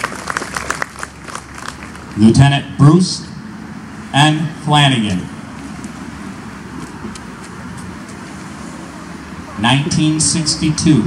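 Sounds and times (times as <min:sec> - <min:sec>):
distant road traffic hum: 0:00.0 - 0:11.0.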